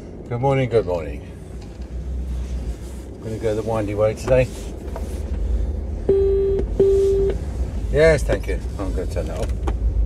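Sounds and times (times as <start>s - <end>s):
electronic car beeps: 6.1s - 7.4s.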